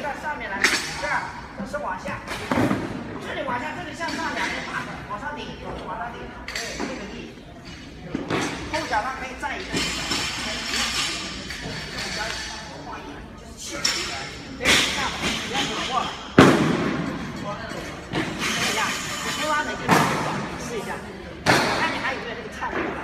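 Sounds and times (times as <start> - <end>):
voices talking in echoing hall: 0.0 - 23.0
heavy thuds with echo: 14.8 - 17.4.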